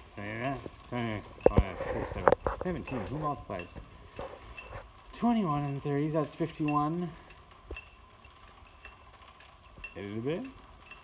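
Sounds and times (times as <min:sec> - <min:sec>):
freewheel pawls tinkling: 0:00.0 - 0:11.0
chain drive faint hum: 0:00.2 - 0:11.0.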